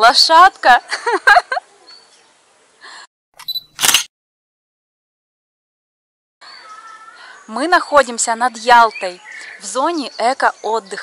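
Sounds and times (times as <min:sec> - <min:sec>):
faint outdoor background: 0:00.0 - 0:04.1, 0:06.4 - 0:11.0
short clicks: 0:03.4 - 0:04.1.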